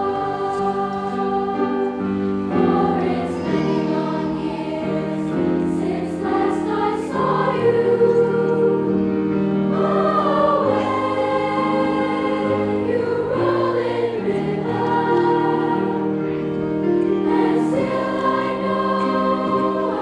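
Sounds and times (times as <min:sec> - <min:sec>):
girls' choir singing in harmony: 0:00.0 - 0:20.0
grand piano accompaniment: 0:00.0 - 0:20.0.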